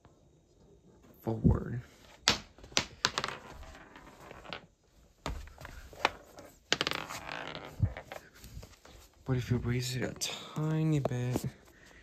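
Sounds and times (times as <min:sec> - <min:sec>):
marble clattering on cardboard: 0:02.2 - 0:08.3.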